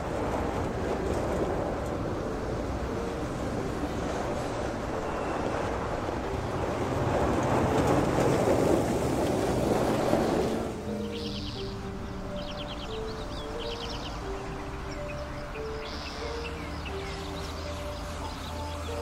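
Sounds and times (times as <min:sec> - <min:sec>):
car driving with road noise: 0:00.0 - 0:19.0
bird chirping in trills: 0:10.2 - 0:19.0.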